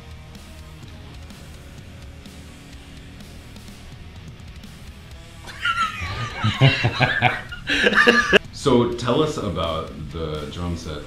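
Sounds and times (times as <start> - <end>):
man chuckling: 5.4 - 8.4.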